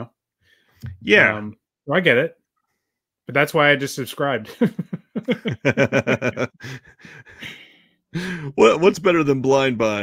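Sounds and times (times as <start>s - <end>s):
man laughing: 4.5s - 8.3s.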